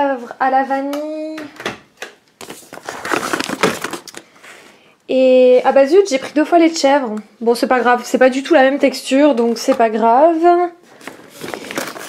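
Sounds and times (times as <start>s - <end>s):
shopping bag crinkling: 2.5s - 4.2s, 11.0s - 12.0s.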